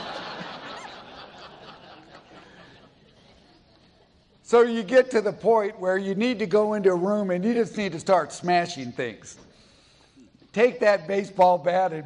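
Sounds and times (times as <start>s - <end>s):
audience laughing: 0.0s - 4.2s.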